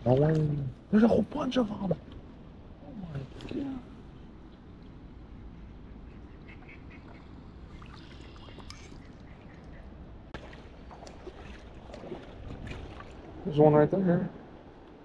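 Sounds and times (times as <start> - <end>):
shallow water sloshing: 6.6 - 13.7.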